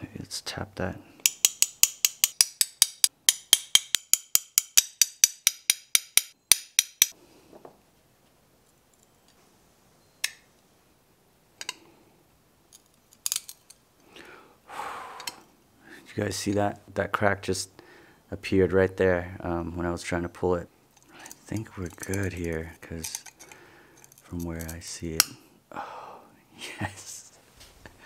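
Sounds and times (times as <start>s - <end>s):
glass cutter tapping glass: 1.3s - 7.2s.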